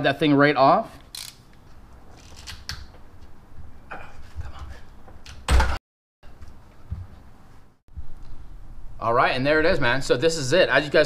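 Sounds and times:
rubber hose creaking and rubbing: 1.2s - 3.0s.

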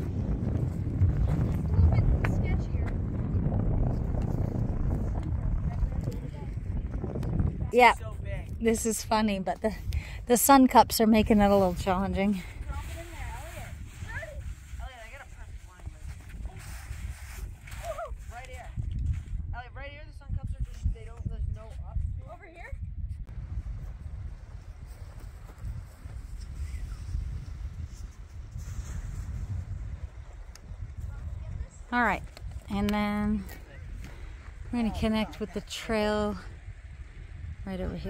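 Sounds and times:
wind rumble on microphone: 0.0s - 38.0s.

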